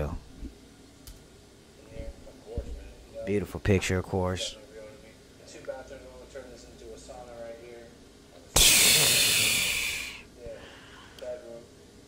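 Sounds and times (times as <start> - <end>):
loud hiss: 8.6 - 10.3.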